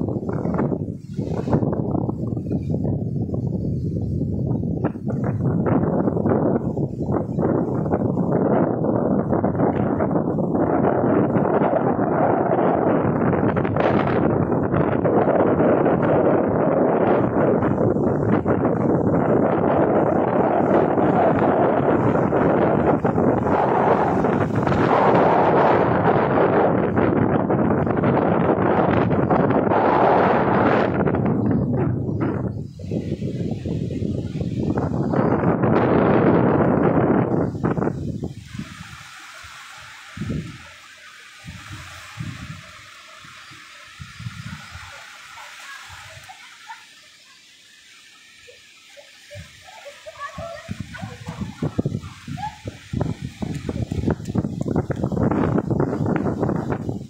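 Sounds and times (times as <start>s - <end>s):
waves washing onto shore: 0.0s - 57.0s
wind buffeting microphone: 0.0s - 57.0s.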